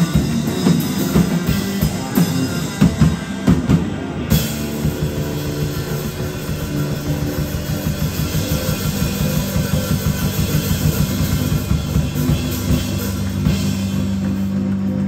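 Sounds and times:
driving drum rhythm: 0.0s - 15.0s
rock band playing: 0.0s - 15.0s.

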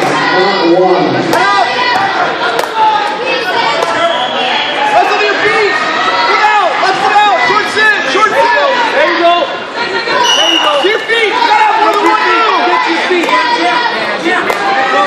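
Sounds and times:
crowd calling out and talking: 0.0s - 15.0s.

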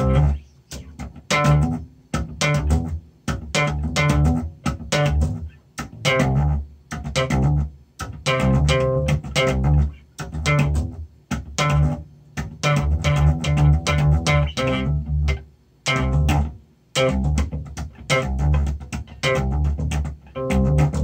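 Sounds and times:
slap bass guitar: 0.0s - 21.0s.

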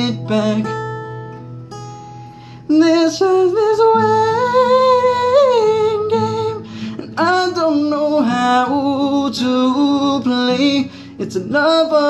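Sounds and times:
man singing in high voice: 0.0s - 1.0s, 2.6s - 12.0s
acoustic guitar: 0.0s - 12.0s.

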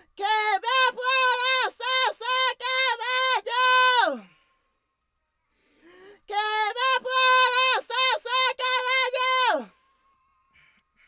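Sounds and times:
soft breath: 4.2s - 6.3s, 9.8s - 11.0s.

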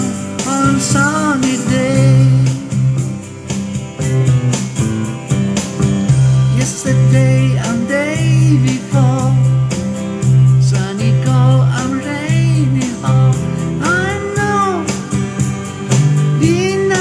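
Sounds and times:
country-rock band music: 0.0s - 17.0s
electric guitar bending notes: 0.0s - 17.0s.

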